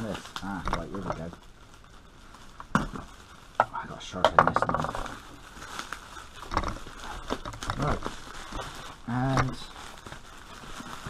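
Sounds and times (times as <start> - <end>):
bubble wrap and paper crinkling: 0.0 - 11.0
sharp loud crackle: 0.0 - 11.0.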